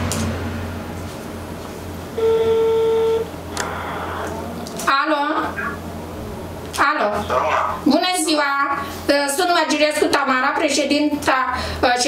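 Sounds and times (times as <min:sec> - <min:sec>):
telephone ringback tone: 0:02.2 - 0:03.3.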